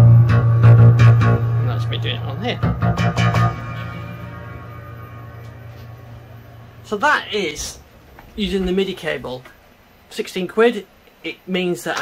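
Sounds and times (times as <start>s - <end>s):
synthesizer notes: 0.0s - 8.8s.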